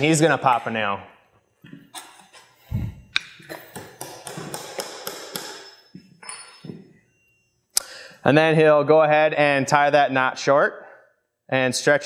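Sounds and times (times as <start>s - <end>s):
hammer knocking nail into wood: 3.8s - 5.6s.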